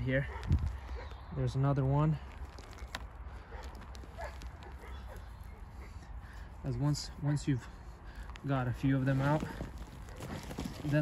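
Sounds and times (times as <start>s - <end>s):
soil and roots crackling: 0.0s - 11.0s.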